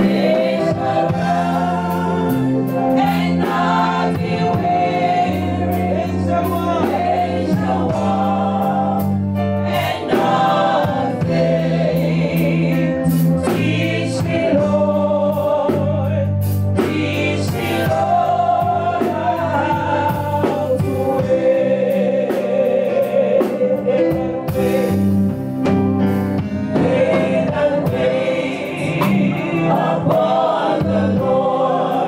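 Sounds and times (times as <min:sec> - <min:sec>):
women singing gospel: 0:00.0 - 0:25.0, 0:26.7 - 0:32.0
held bass line: 0:00.0 - 0:32.0
steady drum beat: 0:00.0 - 0:32.0.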